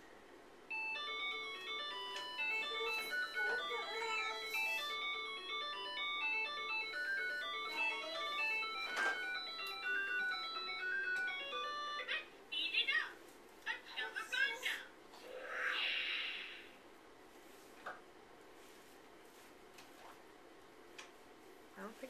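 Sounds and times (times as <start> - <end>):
toy playing beeping tune: 0.7 - 12.2.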